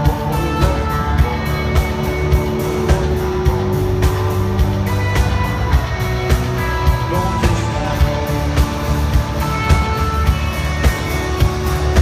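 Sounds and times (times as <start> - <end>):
country-rock band playing live: 0.0 - 12.0.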